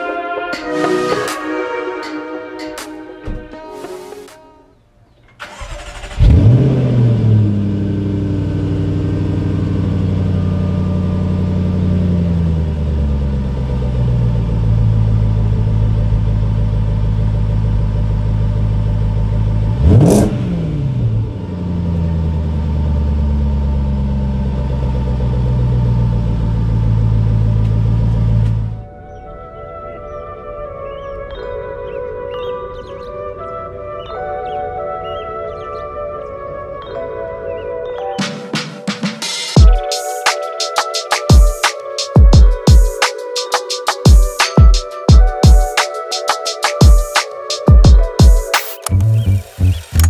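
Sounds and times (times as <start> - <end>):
car engine starting and idling: 5.2 - 28.8, 48.8 - 50.0.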